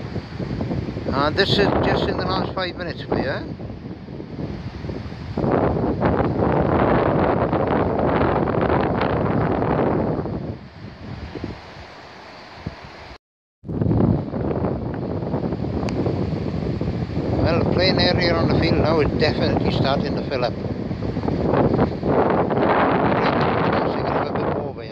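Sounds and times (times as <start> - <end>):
wind buffeting microphone: 0.0 - 24.9.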